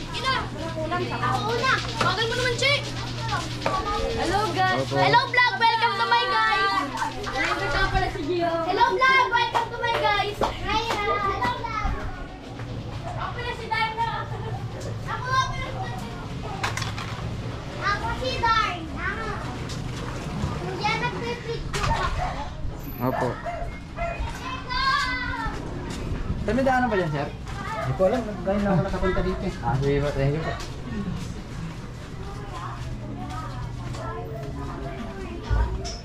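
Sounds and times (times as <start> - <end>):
children calling out: 0.0 - 16.7, 20.3 - 26.0
steady low hum: 0.0 - 36.0
children shouting while playing: 23.3 - 25.6.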